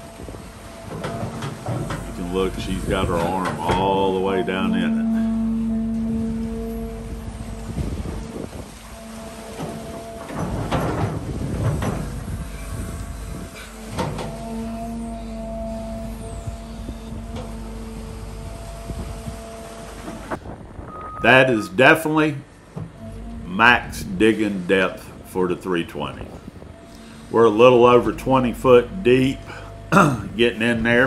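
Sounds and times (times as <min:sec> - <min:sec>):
excavator engine and hydraulics humming: 0:00.0 - 0:31.0.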